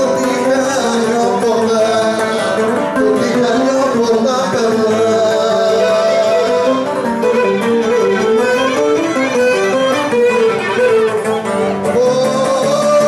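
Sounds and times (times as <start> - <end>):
bowed lyra melody: 0.0 - 13.0
plucked lute accompaniment: 0.0 - 13.0.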